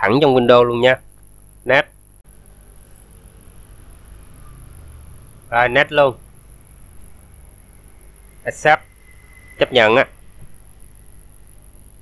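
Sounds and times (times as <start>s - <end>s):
faint high-pitched whine: 0.0s - 12.0s
low steady hum and hiss: 0.0s - 12.0s.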